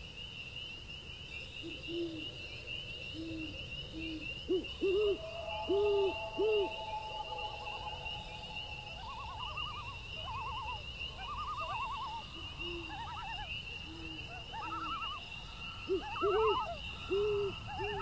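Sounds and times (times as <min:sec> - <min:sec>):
owl hooting: 0:03.2 - 0:18.0
high pulsing trill: 0:05.1 - 0:09.9.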